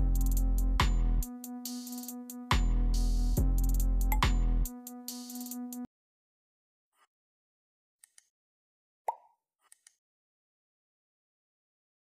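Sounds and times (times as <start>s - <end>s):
mouse clicks: 8.0s - 8.3s.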